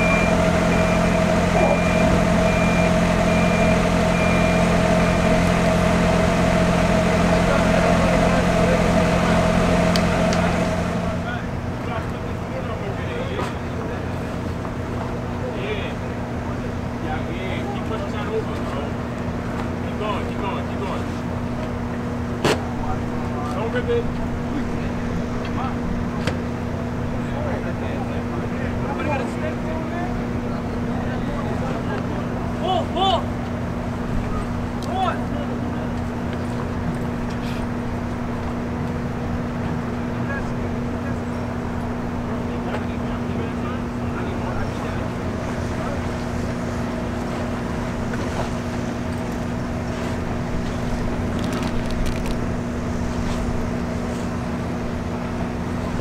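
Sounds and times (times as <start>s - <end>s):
constant low tone: 0.0s - 12.3s
engine idling: 0.0s - 56.0s
noisy rumble: 0.0s - 56.0s
faint voices: 6.6s - 38.3s.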